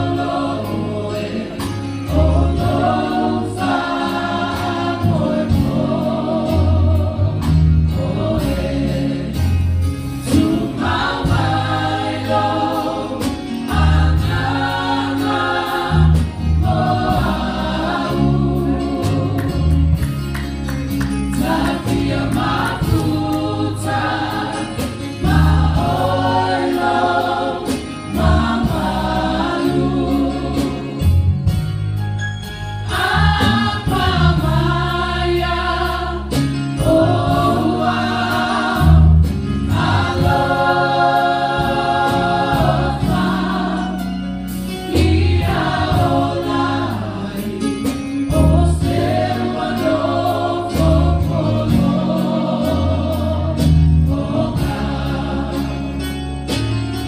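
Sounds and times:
choir singing a gospel song: 0.0 - 57.0
keyboard accompaniment: 0.0 - 57.0.

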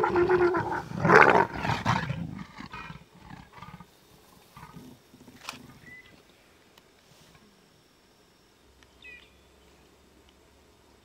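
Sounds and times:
leopards growling and snarling: 0.0 - 5.9.

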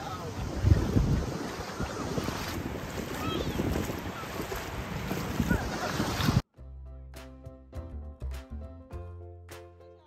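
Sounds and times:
beach surf: 0.0 - 6.4
wind buffeting microphone: 0.0 - 6.4.

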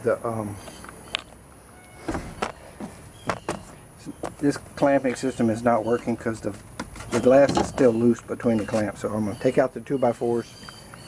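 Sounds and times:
footsteps on boat hull: 1.9 - 5.2.

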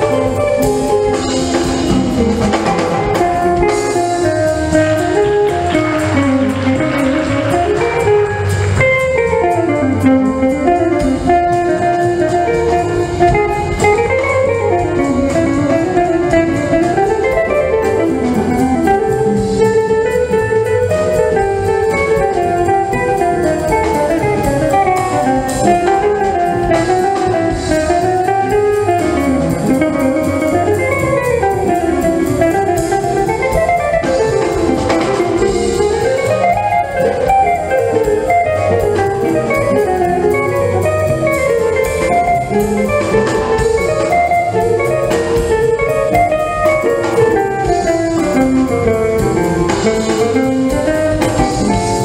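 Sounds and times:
jazz guitar with bass and drums: 0.0 - 52.0.

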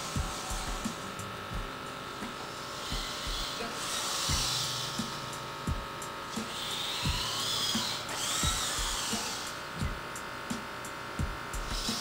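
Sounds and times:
background music with thump: 0.0 - 12.0
servo motors whining: 0.0 - 12.0.

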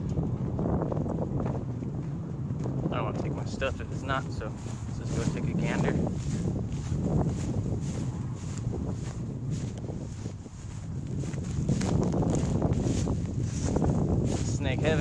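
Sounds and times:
footsteps on dirt path: 0.0 - 15.0
wind buffeting microphone: 0.0 - 15.0
rustling dry grass: 3.7 - 15.0.

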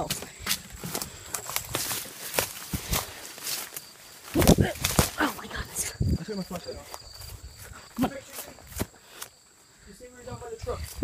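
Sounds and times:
running footsteps through dry leaves: 0.7 - 5.6.

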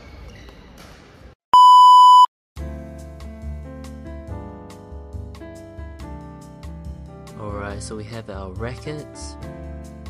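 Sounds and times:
loud electronic beep: 1.6 - 2.3
soft music: 2.6 - 10.0.

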